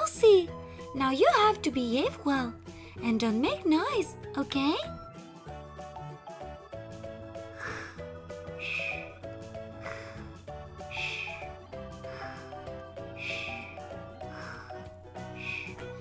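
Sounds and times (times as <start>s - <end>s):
light background music: 0.0s - 16.0s.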